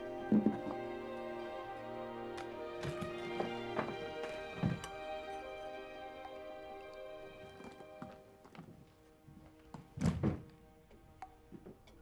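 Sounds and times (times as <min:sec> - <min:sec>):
sustained music: 0:00.0 - 0:12.0.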